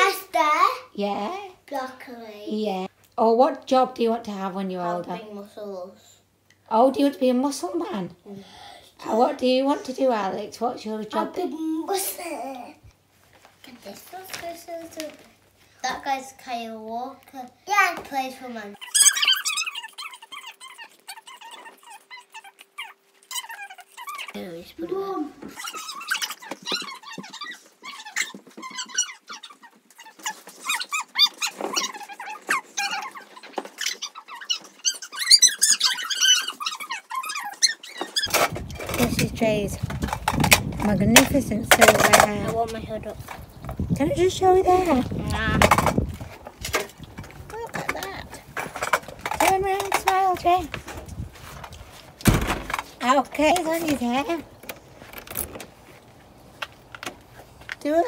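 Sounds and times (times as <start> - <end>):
children squealing and laughing: 18.8 - 38.4.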